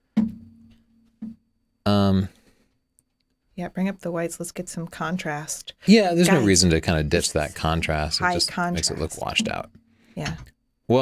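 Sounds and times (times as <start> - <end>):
plucked guitar-like note: 8.2 - 9.6.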